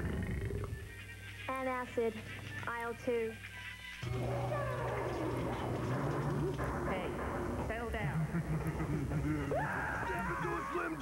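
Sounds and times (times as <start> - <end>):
steady low hum: 4.0 - 11.0.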